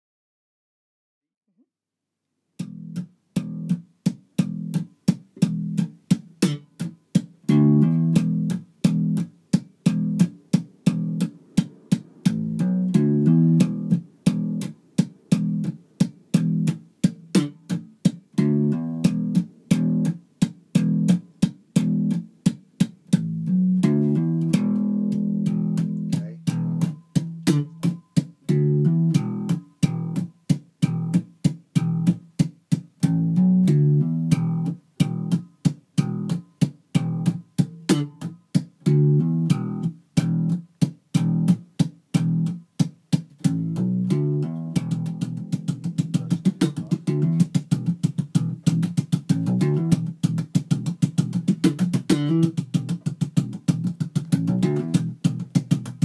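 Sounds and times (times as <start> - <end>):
slap bass guitar funk line: 4.4 - 32.3, 33.0 - 42.6, 43.4 - 56.0.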